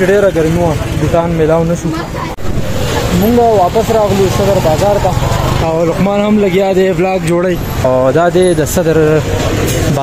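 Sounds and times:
man talking: 0.0s - 2.1s, 3.1s - 9.3s
street traffic passing: 0.0s - 10.0s.

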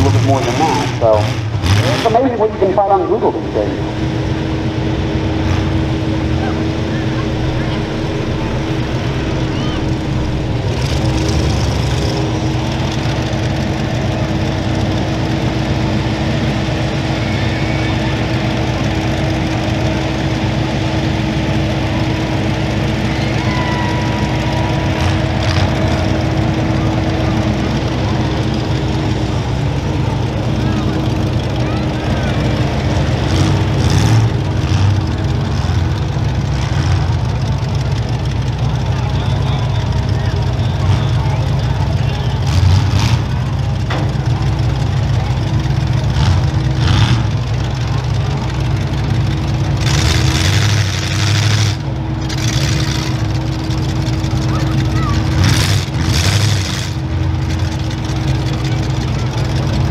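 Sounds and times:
diesel engine rumble: 0.0s - 59.9s
other engines idling: 0.0s - 59.9s.

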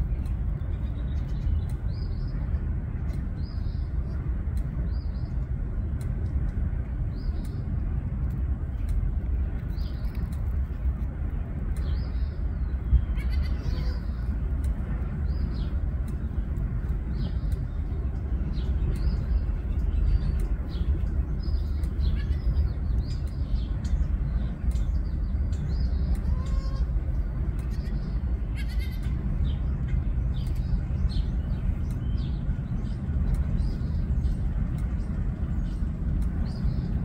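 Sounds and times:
steady low rumble: 0.0s - 37.0s
goat bleating: 28.6s - 29.0s.

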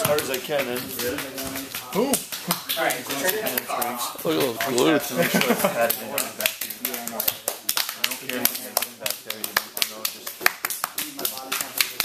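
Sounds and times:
people talking: 0.0s - 10.4s
hands slapping bare skin: 0.0s - 12.0s.

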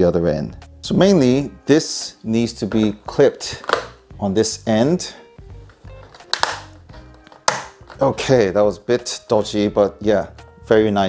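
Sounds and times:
quiet background music: 0.0s - 11.0s
sharp plastic clicks: 6.1s - 8.0s.

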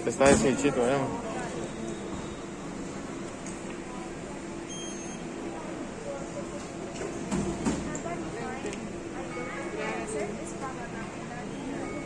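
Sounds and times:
murmuring background voices: 0.0s - 12.0s
steady machinery hum: 0.0s - 12.0s.

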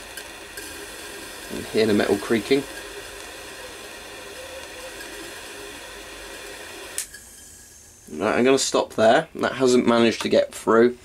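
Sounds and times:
jet lighter flame hissing: 0.0s - 8.6s
lighter click: 6.9s - 7.4s.

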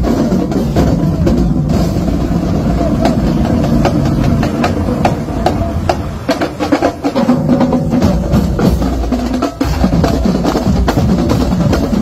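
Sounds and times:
drum strokes: 0.0s - 12.0s
steady low rumble: 0.0s - 12.0s.

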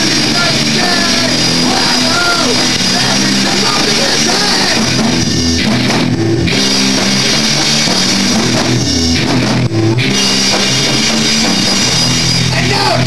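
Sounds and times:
bass guitar: 0.0s - 13.0s
distorted electric guitars: 0.0s - 13.0s
drum kit: 0.0s - 13.0s.

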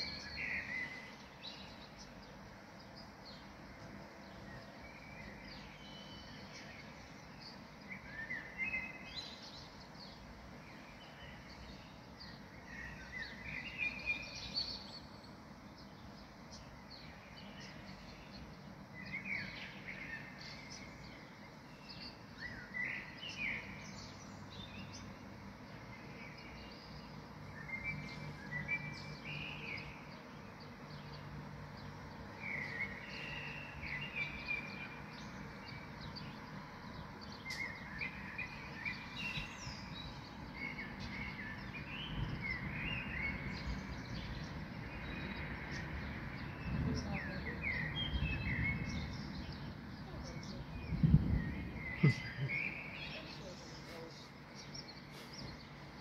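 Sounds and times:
faint steady background noise: 0.0s - 56.0s
songbird chirping: 0.0s - 56.0s.

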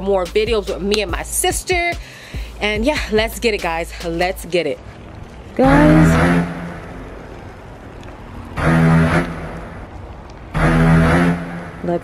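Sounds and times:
low motor drone: 2.6s - 12.0s.

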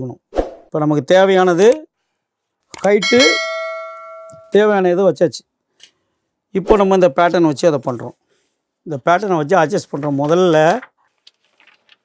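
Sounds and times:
bell ding: 3.0s - 4.7s.

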